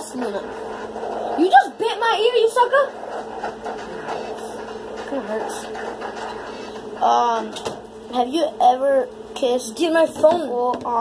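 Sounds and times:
faint constant drone: 0.0s - 11.0s
steady background hum: 0.0s - 11.0s.

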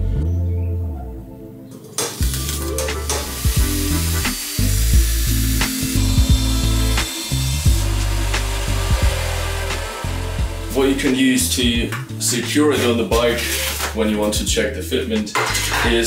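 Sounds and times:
background music: 0.0s - 16.0s
angle grinder cutting steel: 1.9s - 11.7s.

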